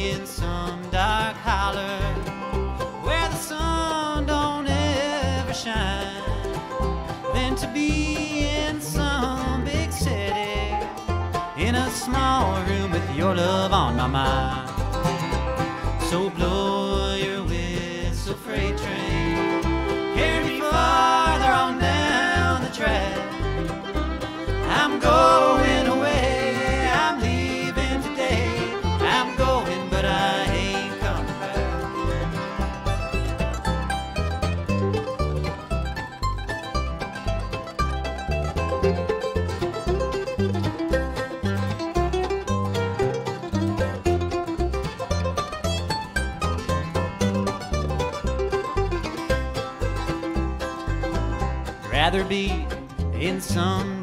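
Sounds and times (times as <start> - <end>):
acoustic guitar: 0.0 - 54.0
fiddle: 0.0 - 54.0
mandolin: 0.0 - 54.0
upright bass: 0.0 - 54.0.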